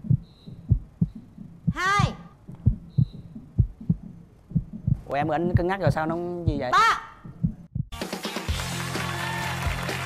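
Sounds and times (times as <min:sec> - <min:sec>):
heartbeat-style low thumps: 0:00.0 - 0:08.0.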